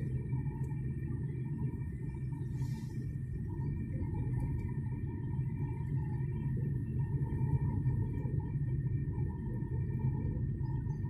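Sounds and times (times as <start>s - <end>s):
car engine and tyres rumbling: 0.0s - 11.0s
faint whine: 0.0s - 11.0s.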